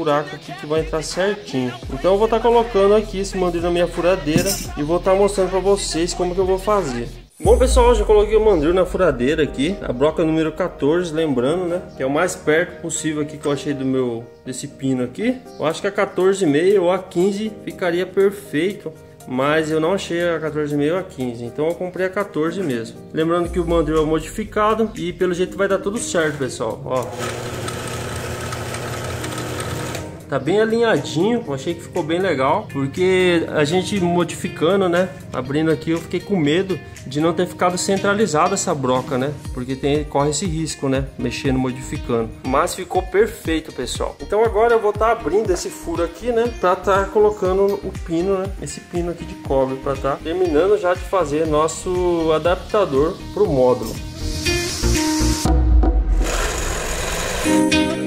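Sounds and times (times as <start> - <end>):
electric drill motor whine: 27.1 - 30.1, 56.2 - 57.6.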